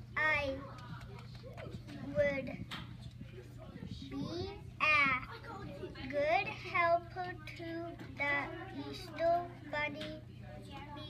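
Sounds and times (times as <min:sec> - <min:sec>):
girl reading aloud sing-song: 0:00.0 - 0:01.0, 0:01.9 - 0:02.8, 0:04.0 - 0:11.0.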